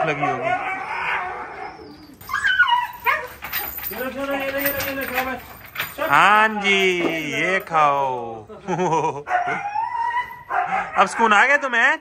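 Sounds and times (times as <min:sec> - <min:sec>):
dog whining: 0:00.0 - 0:03.9, 0:09.3 - 0:11.0.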